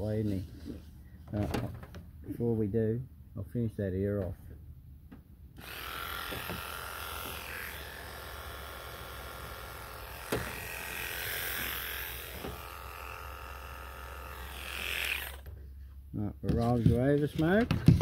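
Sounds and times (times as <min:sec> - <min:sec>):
electric clippers buzzing: 0:05.6 - 0:15.5.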